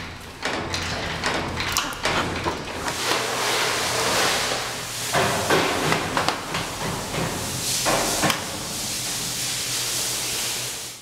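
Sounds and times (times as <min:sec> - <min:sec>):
metal mesh knocking and rattling: 0:00.0 - 0:03.0
steady hiss: 0:02.9 - 0:11.0.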